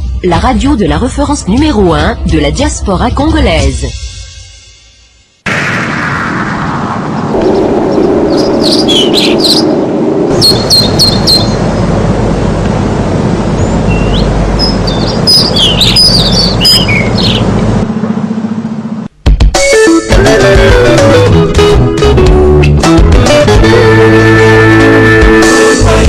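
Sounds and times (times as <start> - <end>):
deep rumble: 5.5 - 19.1
loud steady rushing noise: 5.5 - 19.2
birds chirping: 7.1 - 12.1, 13.3 - 17.9.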